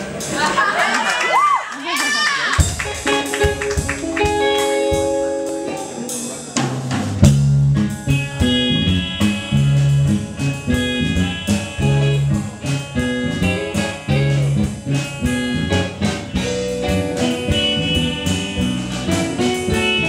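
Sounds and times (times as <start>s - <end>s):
drum kit beat: 0.0s - 1.4s, 2.0s - 20.0s
bass guitar line: 2.6s - 20.0s
electric guitar chords: 2.6s - 20.0s.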